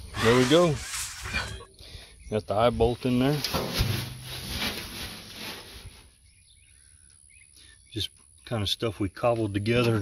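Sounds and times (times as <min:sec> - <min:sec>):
low rustling: 0:03.2 - 0:06.1
faint bird chirps: 0:06.1 - 0:10.0.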